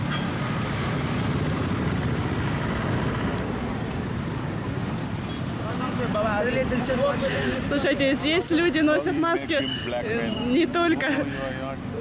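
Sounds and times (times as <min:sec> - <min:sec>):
street traffic: 0:00.0 - 0:12.0
people's voices: 0:05.6 - 0:12.0.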